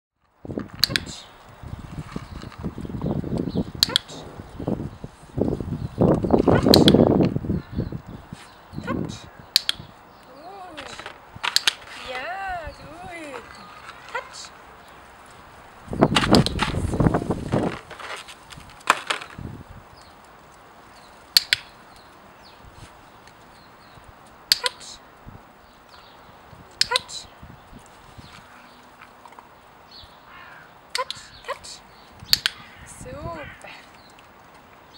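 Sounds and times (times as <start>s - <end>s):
low rumbling microphone noise: 0.4s - 11.4s
training clicker clicks: 6.6s - 7.0s, 9.5s - 9.9s, 10.8s - 11.9s, 21.3s - 22.0s, 32.3s - 32.6s
clicker double clicks: 6.6s - 7.1s, 9.5s - 9.9s, 32.3s - 32.6s.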